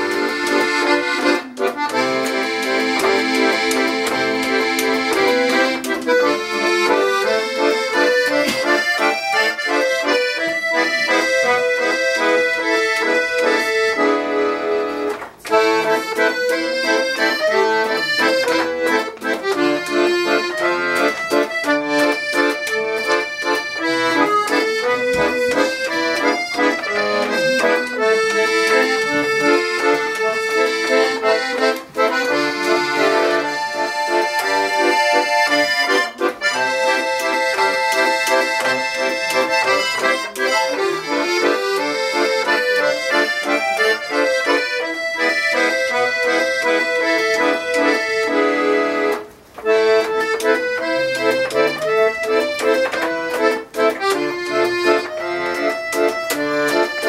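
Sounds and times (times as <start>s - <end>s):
solo accordion tune: 0.0s - 57.0s.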